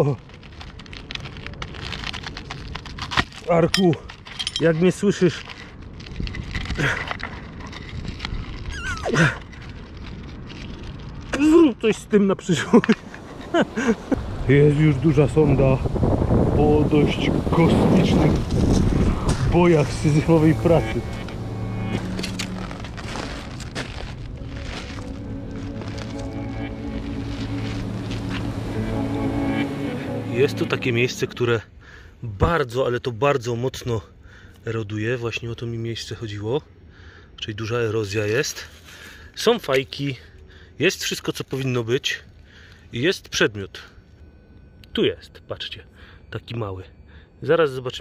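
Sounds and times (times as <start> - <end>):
low rumble: 14.1 - 31.9
background music with low notes: 19.1 - 31.7.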